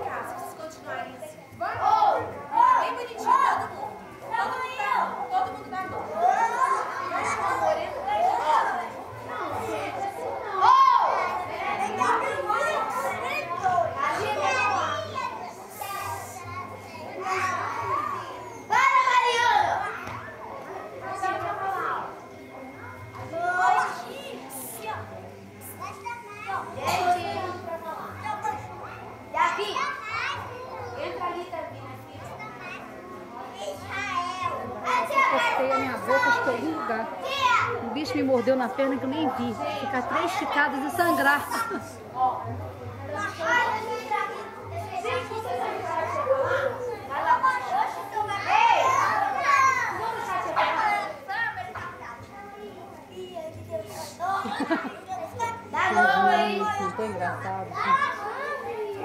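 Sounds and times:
children calling and chattering: 0.0s - 59.0s.

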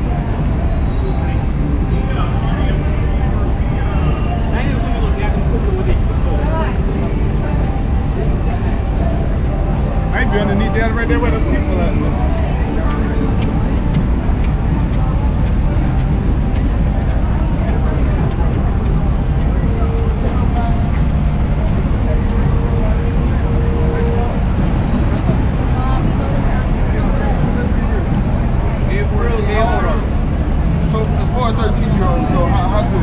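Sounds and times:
passers-by talking: 0.0s - 33.0s
traffic rumble: 0.0s - 33.0s.

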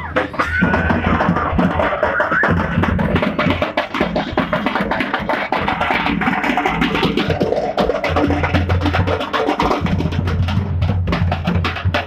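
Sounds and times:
fast drum strokes: 0.0s - 12.0s.

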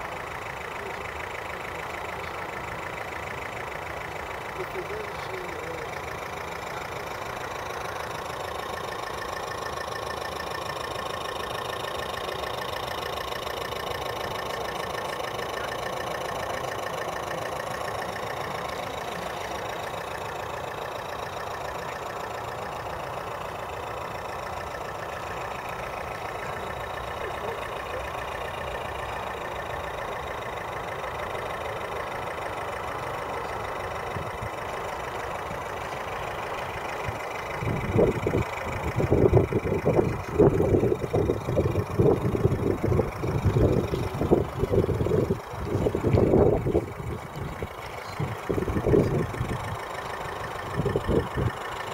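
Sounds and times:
wind rumble on microphone: 37.6s - 47.6s.

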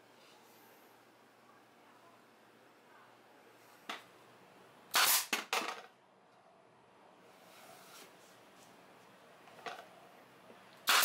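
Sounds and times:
pneumatic nailer shots: 4.9s - 5.7s.

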